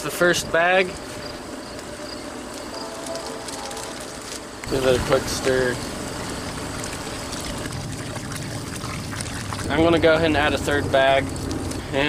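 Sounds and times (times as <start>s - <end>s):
stick swishing water: 6.4s - 10.2s.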